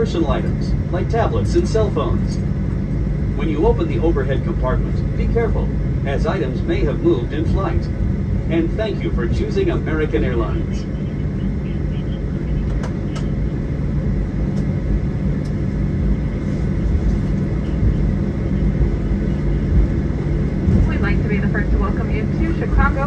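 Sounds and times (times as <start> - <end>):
airliner cabin hum: 0.0 - 23.0.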